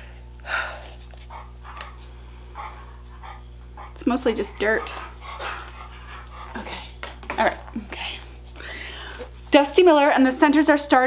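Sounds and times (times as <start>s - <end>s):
low electrical hum: 0.0s - 11.0s
dog panting and snuffling: 0.9s - 7.7s.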